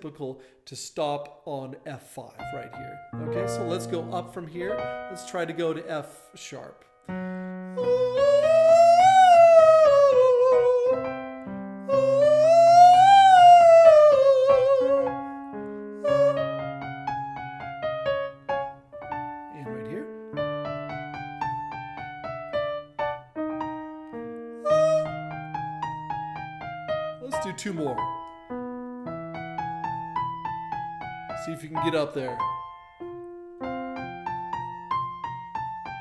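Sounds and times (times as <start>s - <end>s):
piano accompaniment: 2.2s - 36.0s
man singing in falsetto: 7.8s - 11.1s, 11.9s - 15.2s, 16.0s - 16.6s, 24.6s - 25.3s.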